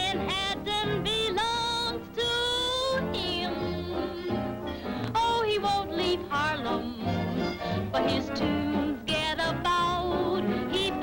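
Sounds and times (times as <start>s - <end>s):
person singing: 0.0s - 11.0s
swing band music: 0.0s - 11.0s.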